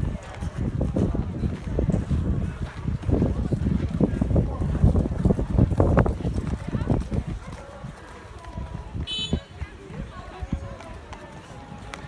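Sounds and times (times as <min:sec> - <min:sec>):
hoofbeats on sand: 0:00.0 - 0:12.0.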